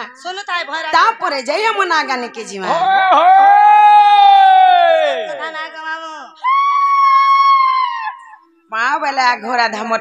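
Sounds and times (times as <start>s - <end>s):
high drawn-out vocal cry: 6.4s - 8.4s.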